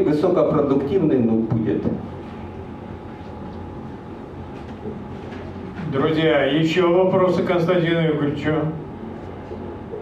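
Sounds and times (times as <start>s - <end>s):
ventilation system hum: 0.0s - 10.0s.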